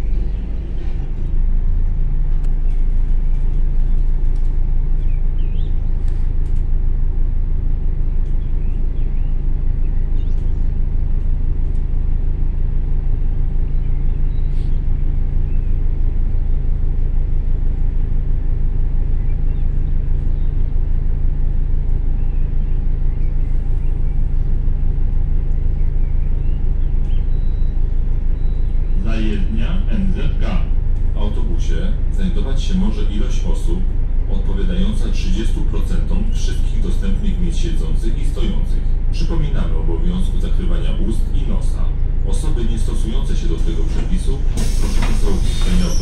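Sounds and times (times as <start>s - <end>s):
bus engine rumble: 0.0s - 46.0s.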